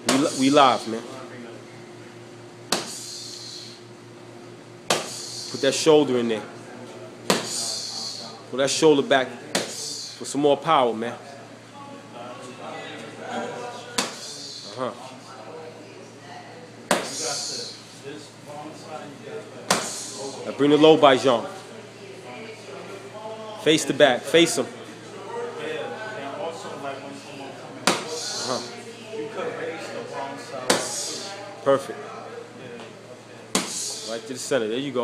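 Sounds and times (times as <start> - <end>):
boxing gloves smacking mitts: 2.7 - 3.0, 4.9 - 5.2, 7.3 - 7.6, 9.5 - 9.8, 16.9 - 17.2, 33.5 - 33.8.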